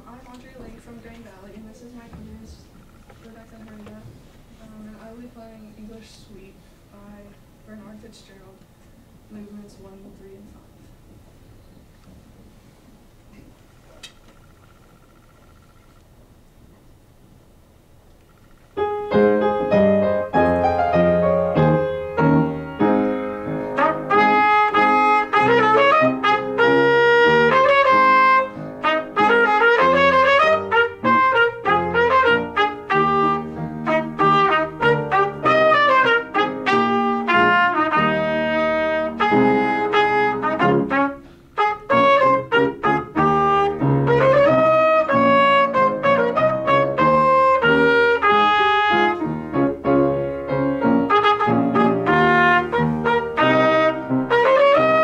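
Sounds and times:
piano accompaniment: 0:18.7 - 0:55.0
trumpet solo melody: 0:18.8 - 0:55.0.

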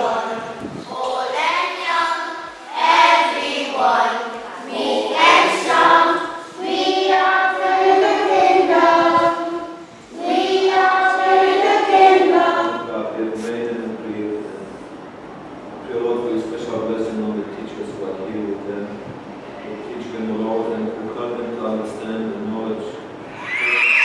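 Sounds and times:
children singing together: 0:00.0 - 0:12.9.

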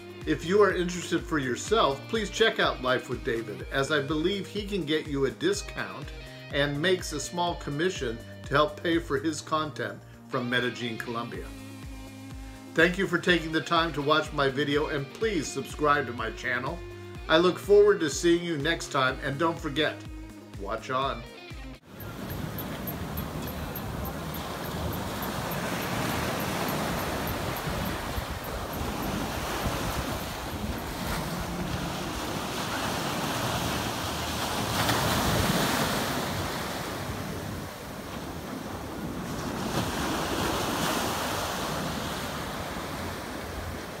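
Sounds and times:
wind buffeting microphone: 0:21.9 - 0:33.8
waves breaking on beach: 0:21.9 - 0:44.0.

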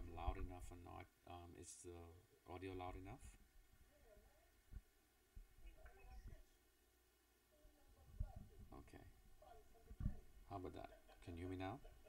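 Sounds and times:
soft low thuds: 0:09.9 - 0:10.4.

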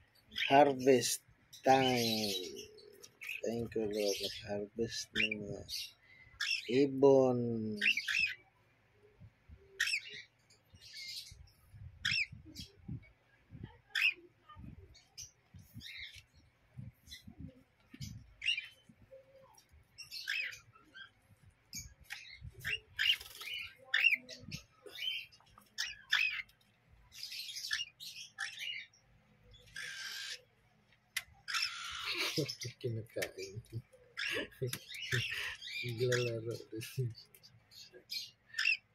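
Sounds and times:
parrot chicks chirping: 0:00.0 - 0:08.6, 0:09.7 - 0:38.9
rasping squawks: 0:22.1 - 0:26.5, 0:29.7 - 0:30.5, 0:31.5 - 0:32.7, 0:37.8 - 0:38.9.

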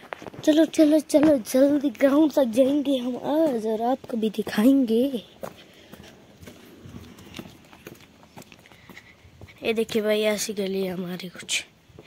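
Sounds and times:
footsteps on a path: 0:00.0 - 0:12.0.

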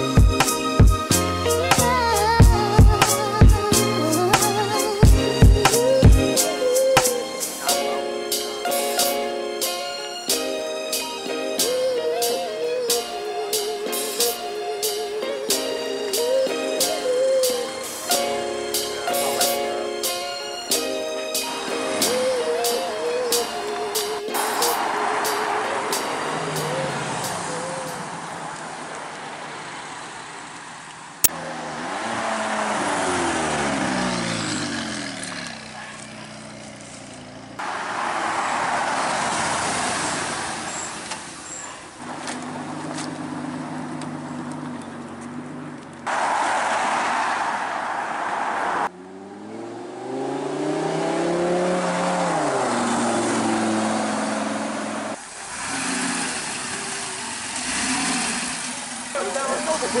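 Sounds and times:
sports cars accelerating: 0:00.0 - 1:00.0.

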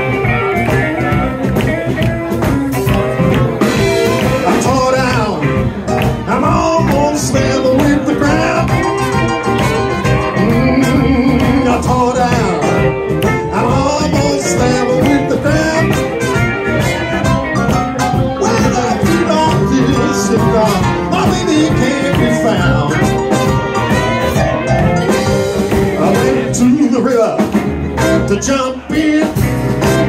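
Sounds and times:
blues band playing: 0:00.0 - 0:30.0
electric guitar: 0:00.0 - 0:30.0
horns: 0:02.8 - 0:26.9, 0:28.0 - 0:30.0.

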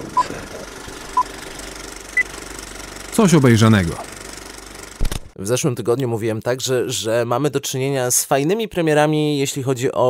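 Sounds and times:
rapid mechanical clatter: 0:00.0 - 0:05.4.

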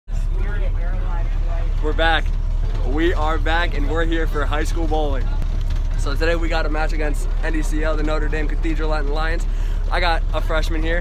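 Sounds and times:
bus engine rumble: 0:00.1 - 0:11.0
faint passenger chatter: 0:00.1 - 0:11.0
road noise: 0:00.1 - 0:11.0.

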